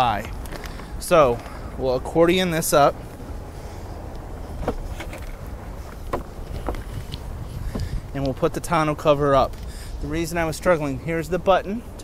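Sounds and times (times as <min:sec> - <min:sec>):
steady low rumble: 0:00.0 - 0:12.0
light clicks and knocks: 0:04.1 - 0:08.4.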